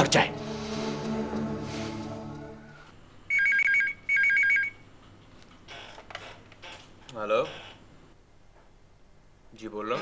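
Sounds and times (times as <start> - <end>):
telephone ringing with two-tone trill: 3.3 - 4.8.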